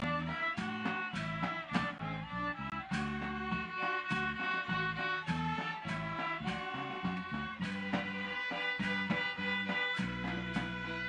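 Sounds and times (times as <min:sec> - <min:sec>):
bass line: 0:00.0 - 0:11.0
violins playing melody: 0:00.0 - 0:11.0
hand cymbals: 0:02.8 - 0:11.0.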